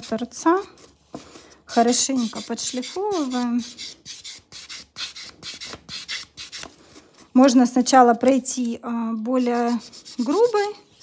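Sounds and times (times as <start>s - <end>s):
nail buffer scratching: 1.7s - 6.7s.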